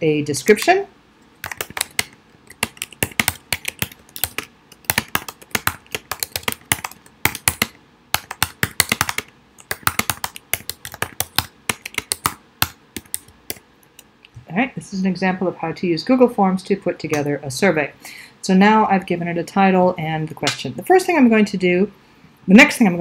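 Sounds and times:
computer keyboard typing: 1.4 - 13.6.

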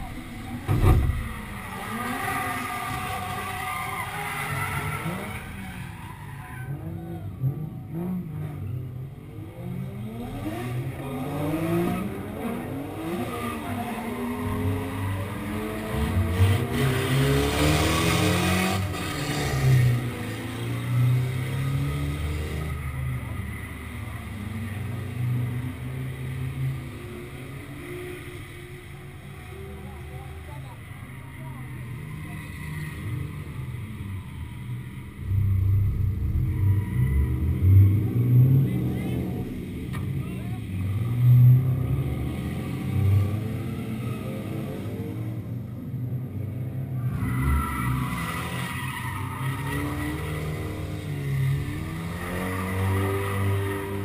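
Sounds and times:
tire squeal: 0.0 - 7.7, 10.2 - 25.7, 26.6 - 41.5, 47.0 - 54.0
car engine revving: 0.0 - 45.7, 46.9 - 54.0.

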